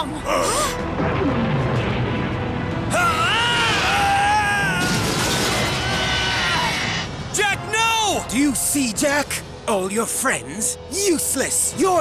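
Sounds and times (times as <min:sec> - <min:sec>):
background music: 0:00.0 - 0:12.0
rushing explosion blast: 0:03.6 - 0:06.7.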